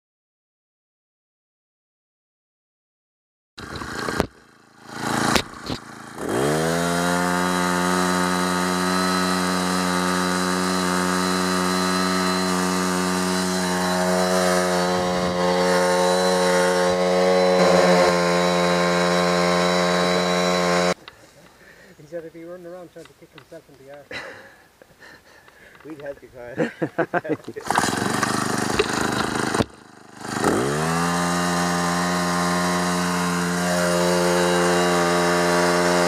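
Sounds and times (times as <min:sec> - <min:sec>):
small petrol engine running: 0:03.6 - 0:21.0, 0:27.6 - 0:36.0
pull-cord attempts: 0:27.4 - 0:30.7.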